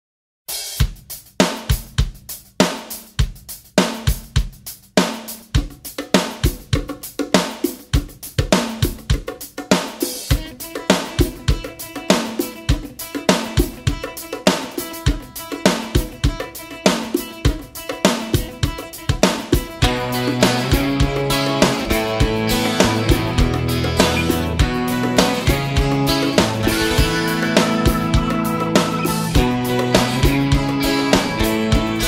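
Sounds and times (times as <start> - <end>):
drum kit playing a groove: 0.5 - 32.0
held instrument notes: 10.4 - 32.0.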